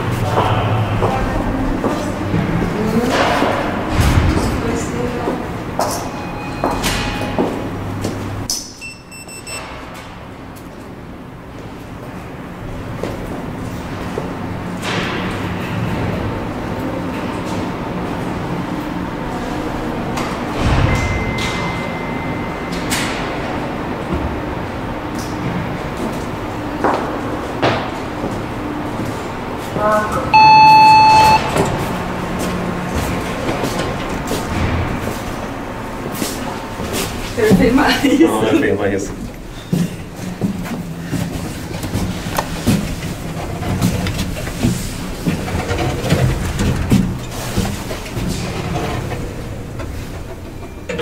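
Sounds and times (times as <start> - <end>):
elevator doors sliding open: 0.0 - 51.0
elevator machinery hum: 0.0 - 51.0
elevator arrival chime: 6.0 - 7.8, 8.7 - 9.7, 20.8 - 23.0, 30.3 - 31.7.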